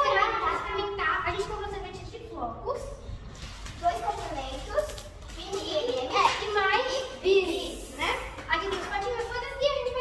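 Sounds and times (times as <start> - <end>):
girls talking: 0.0 - 10.0.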